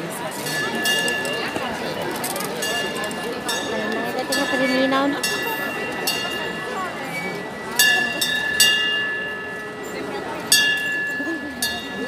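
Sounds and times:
crowd chatter: 0.0s - 12.0s
small bell ringing: 2.5s - 12.0s.

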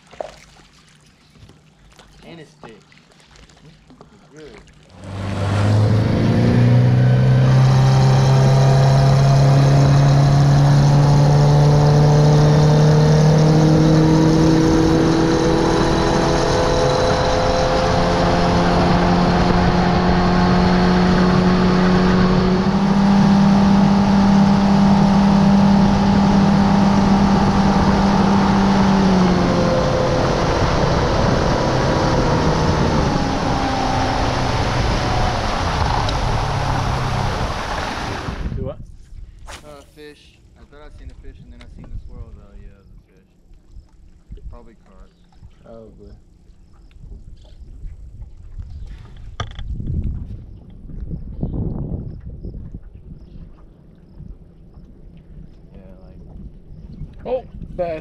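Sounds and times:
outboard motor whining: 0.0s - 38.6s.

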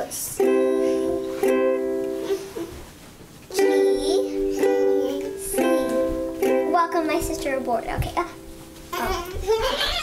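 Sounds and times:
ukulele chords strummed: 0.4s - 2.6s, 3.5s - 8.7s.

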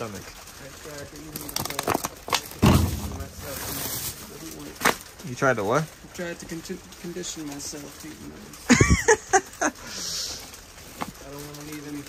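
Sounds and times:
loud crunch of plastic: 0.0s - 9.2s
plastic bags crinkling and rustling: 0.0s - 12.0s.

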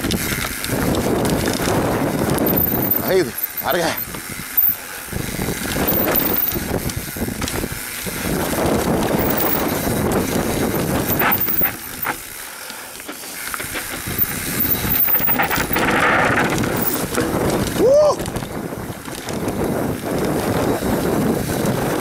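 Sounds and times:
wind rushing over camera: 0.0s - 12.4s, 13.1s - 22.0s
bike knocks and rattles: 0.0s - 22.0s
tyres rolling on loose dirt: 0.0s - 22.0s.

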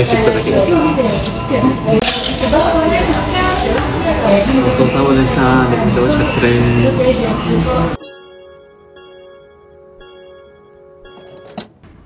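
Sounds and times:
soft bell-like chime music: 8.0s - 11.7s.

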